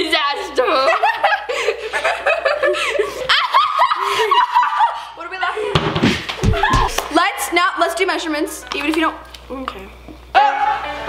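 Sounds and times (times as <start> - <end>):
girls talking: 0.0 - 1.2, 5.1 - 5.8, 6.4 - 10.6
girls laughing: 0.5 - 7.0.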